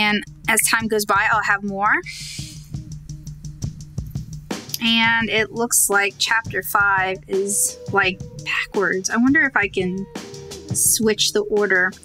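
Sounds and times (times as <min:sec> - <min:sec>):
woman speaking: 0:00.0 - 0:02.4, 0:04.8 - 0:10.1, 0:10.8 - 0:12.0
background music with steady beat: 0:00.0 - 0:12.0.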